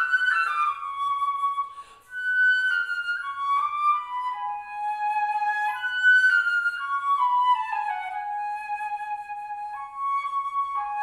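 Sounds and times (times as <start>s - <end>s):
solo flute melody: 0.0s - 11.0s.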